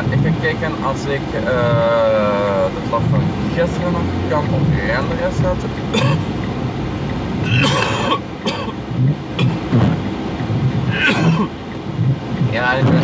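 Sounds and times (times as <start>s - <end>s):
vehicle rumble: 0.0s - 13.0s
man coughing: 5.9s - 6.3s, 7.5s - 8.8s, 10.9s - 11.5s.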